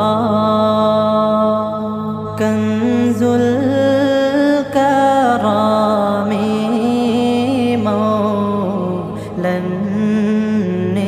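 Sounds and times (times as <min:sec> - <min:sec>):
person chanting a melody: 0:00.0 - 0:11.0.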